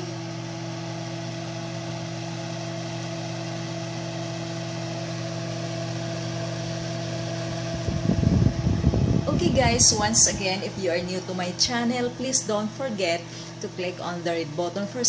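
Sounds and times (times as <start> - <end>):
steady machine hum: 0.0 - 15.0.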